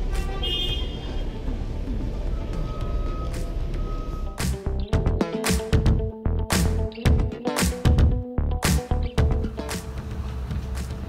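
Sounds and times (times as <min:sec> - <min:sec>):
traffic engine rumble: 0:00.0 - 0:05.1.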